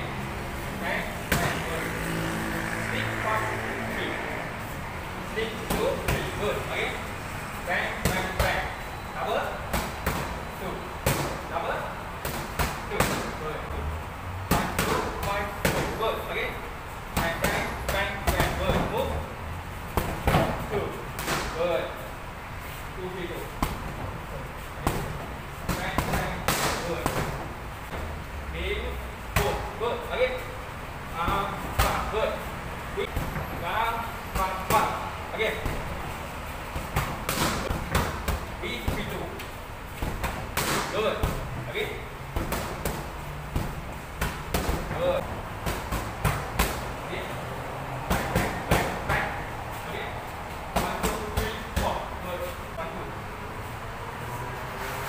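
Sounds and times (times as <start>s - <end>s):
boxing gloves smacking mitts: 36.7s - 41.5s, 42.3s - 46.9s, 48.0s - 52.1s.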